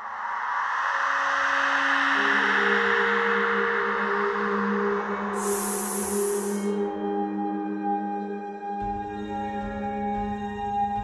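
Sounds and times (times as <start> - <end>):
bell-like drone tones: 2.2 - 6.9
high hiss burst: 5.4 - 6.8.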